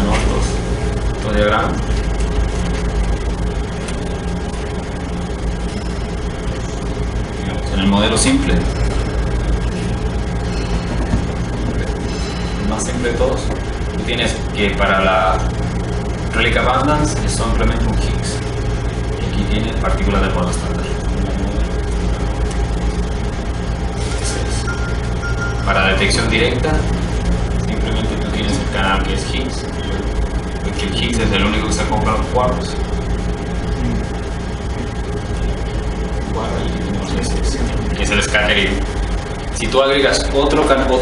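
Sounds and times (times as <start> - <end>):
constant hiss: 0.0 - 41.0
low room hum: 0.0 - 41.0.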